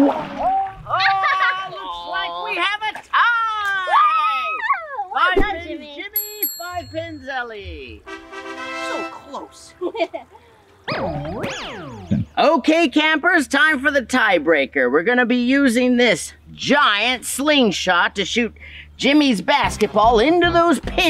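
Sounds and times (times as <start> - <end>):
bright ding: 6.2 - 7.4.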